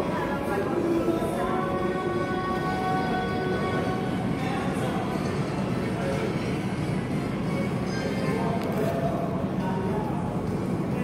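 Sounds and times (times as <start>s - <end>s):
faint music: 0.0s - 11.0s
low indoor rumble: 0.0s - 11.0s.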